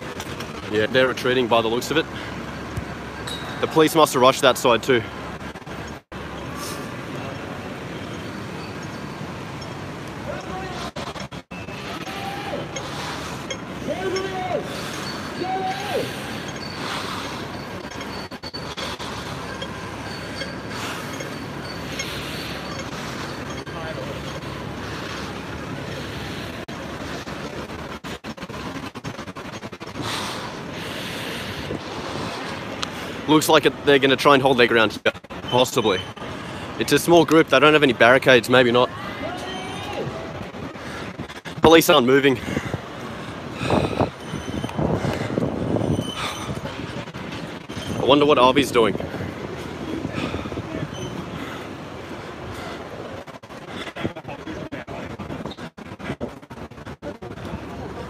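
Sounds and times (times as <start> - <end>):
distant voices: 0.0 - 58.0
street noise: 0.0 - 58.0
people calling out: 11.8 - 13.1, 13.8 - 17.0, 38.9 - 40.4.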